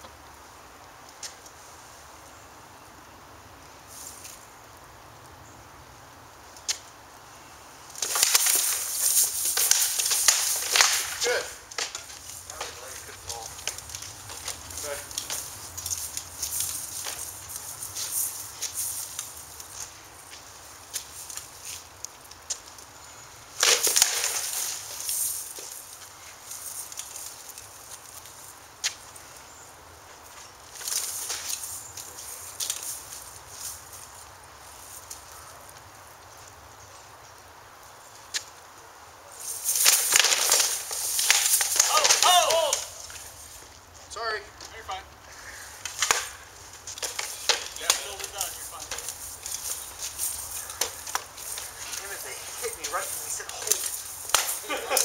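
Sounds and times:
feet shuffling: 7.8s - 36.6s, 39.3s - 55.0s.

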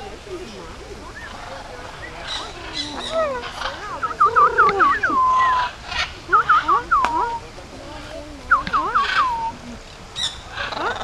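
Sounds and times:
parrots calling: 0.0s - 11.0s.

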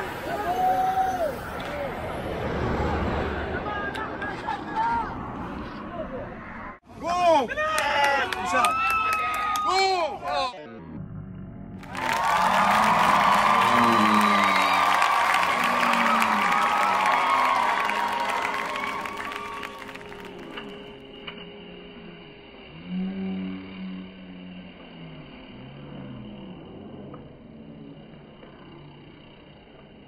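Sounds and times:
voices: 0.0s - 9.4s, 11.9s - 20.7s
crowd cheering and clapping: 7.6s - 10.0s, 11.8s - 21.0s.

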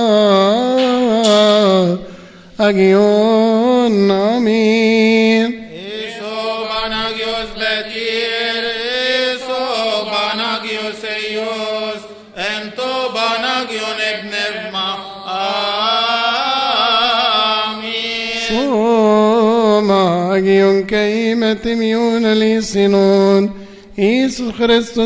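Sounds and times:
man chanting: 0.0s - 25.0s.

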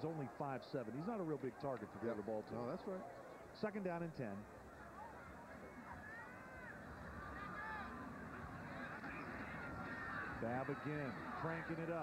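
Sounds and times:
stadium crowd din: 0.0s - 12.0s
crowd shouts and whoops: 5.8s - 11.7s.

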